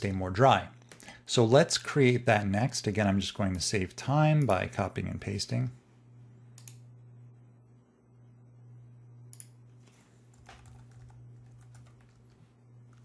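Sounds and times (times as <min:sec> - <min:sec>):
steady low hum: 0:00.0 - 0:13.0
faint keyboard keystrokes: 0:09.4 - 0:13.0.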